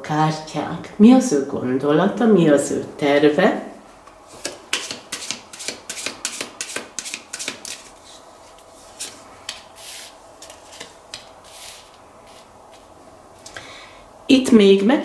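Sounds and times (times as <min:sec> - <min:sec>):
cards being shuffled: 0:04.3 - 0:12.9.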